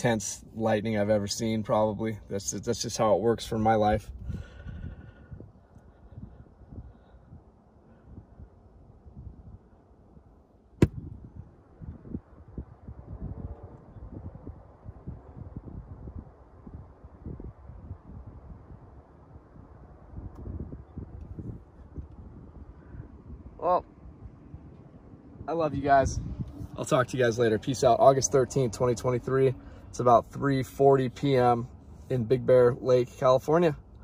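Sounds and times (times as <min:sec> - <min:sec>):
wind buffeting microphone: 0:02.6 - 0:30.0.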